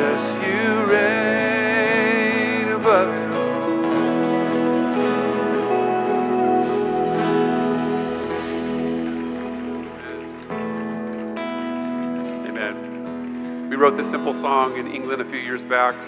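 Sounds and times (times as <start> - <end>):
acoustic guitar and band chords: 0.0 - 16.0.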